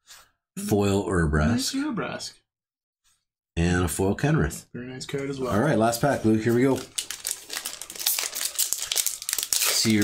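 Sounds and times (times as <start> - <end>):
foil wrapper crinkling: 5.6 - 10.0.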